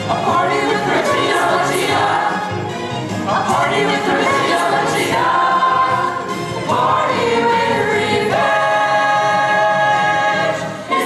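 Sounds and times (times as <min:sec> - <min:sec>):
ensemble singing show tune: 0:00.0 - 0:11.0
musical accompaniment: 0:00.0 - 0:11.0.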